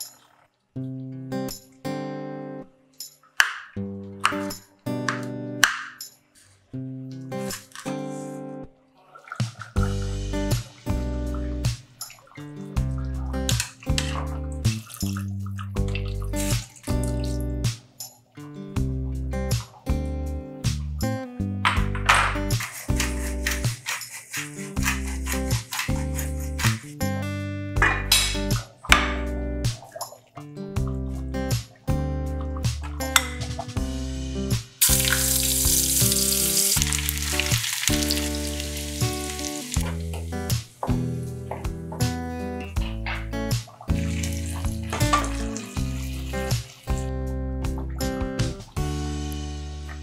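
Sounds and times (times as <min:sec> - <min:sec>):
background music: 0:00.8 - 0:50.0
water pouring into a pot: 0:09.0 - 0:17.6, 0:34.8 - 0:40.5, 0:43.9 - 0:47.2
onions sizzling in hot oil: 0:34.8 - 0:40.8
curry simmering: 0:34.9 - 0:41.4, 0:43.9 - 0:47.3.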